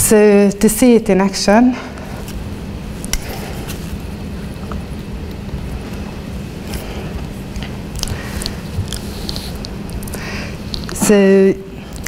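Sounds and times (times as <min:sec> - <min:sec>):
electrical hum: 0:00.0 - 0:12.0
low room rumble: 0:00.0 - 0:12.0.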